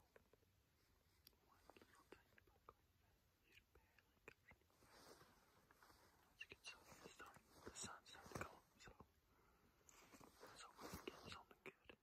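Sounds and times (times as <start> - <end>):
faint whispered speech: 1.3 - 5.2, 6.1 - 9.1, 10.3 - 12.0.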